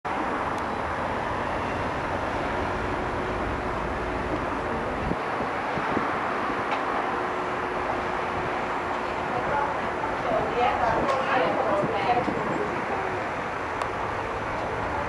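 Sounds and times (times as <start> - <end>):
distant city traffic hum: 0.0 - 15.0.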